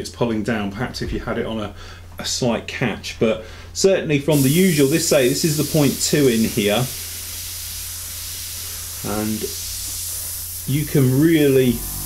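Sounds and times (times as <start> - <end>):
airbrush hissing: 4.3 - 12.0.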